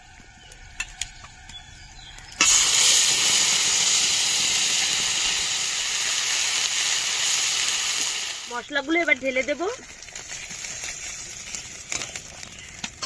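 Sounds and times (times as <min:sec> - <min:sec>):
paste sizzling in hot oil: 0:02.2 - 0:13.0.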